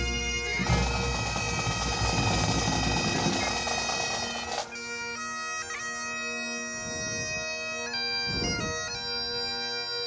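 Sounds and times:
bagpipe band playing: 0.0s - 10.0s.

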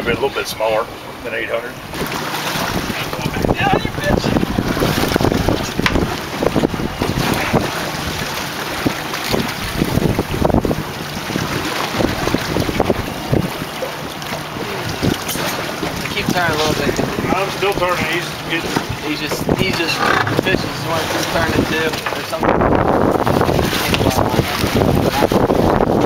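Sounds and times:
sea noise: 0.0s - 26.0s
wind buffeting microphone: 1.8s - 26.0s.

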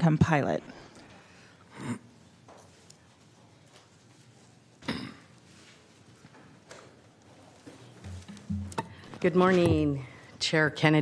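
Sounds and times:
faint footsteps: 7.3s - 10.1s.

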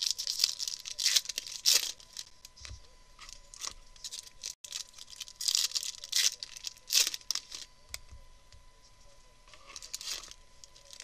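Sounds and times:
foil wrapper torn open crinkling: 0.0s - 2.3s, 3.5s - 7.7s.

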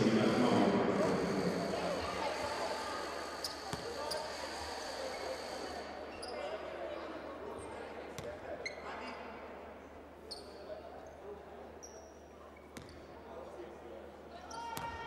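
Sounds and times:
crowd murmur: 0.0s - 8.2s
sneaker squeaks: 3.4s - 4.4s, 6.1s - 6.7s, 7.6s - 9.4s, 10.3s - 11.2s, 11.8s - 13.1s.

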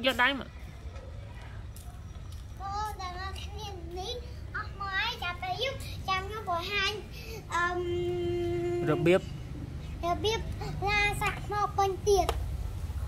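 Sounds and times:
child singing: 2.6s - 9.1s, 10.0s - 12.3s.

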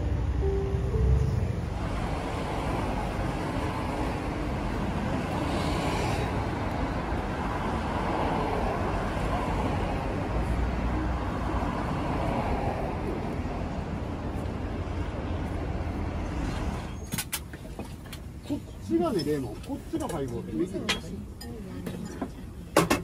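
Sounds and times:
cars passing on street: 0.0s - 23.0s.

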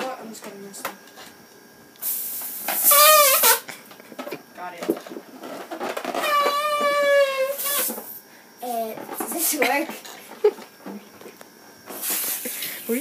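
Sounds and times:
gas hissing out of balloon: 2.0s - 3.7s, 6.2s - 9.6s, 11.9s - 13.0s
balloon neck squealing: 2.7s - 3.7s, 6.0s - 8.0s.

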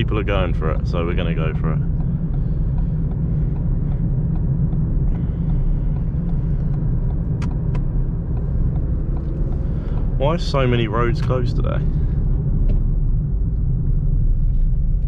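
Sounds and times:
car engine running: 0.0s - 15.0s
tyre and road rumble: 0.0s - 15.0s.

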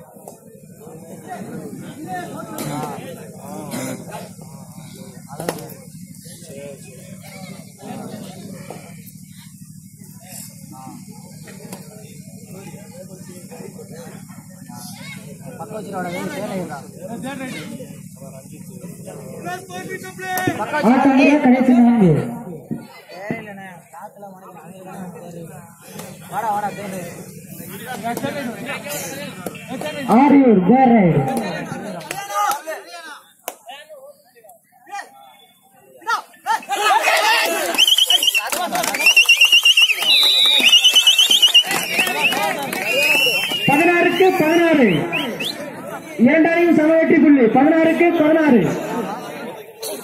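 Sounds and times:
men calling and talking: 0.0s - 50.0s
voices shouting: 34.9s - 46.4s
pea whistle trilling blasts: 37.7s - 38.4s, 39.0s - 45.6s.

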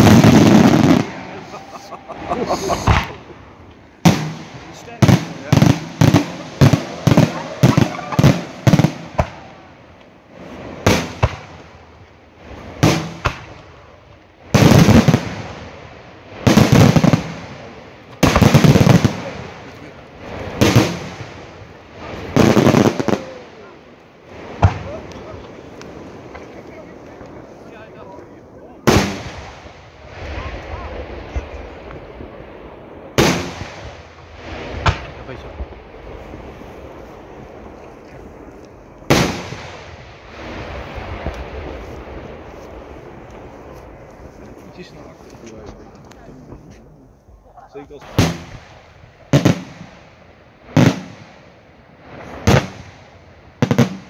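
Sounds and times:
fireworks bangs: 0.0s - 54.0s
longer firework bursts: 0.0s - 54.0s.

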